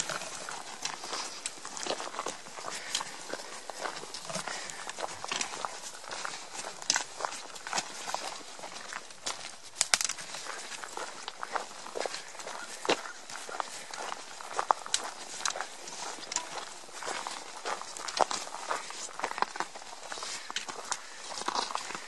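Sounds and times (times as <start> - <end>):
footsteps crunching on rocky trail: 0.0 - 22.0
trekking poles tapping stones: 0.0 - 22.0.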